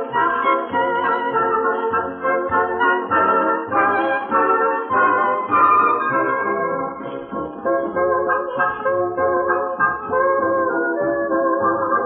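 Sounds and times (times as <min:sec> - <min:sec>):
band playing melody: 0:00.0 - 0:12.0.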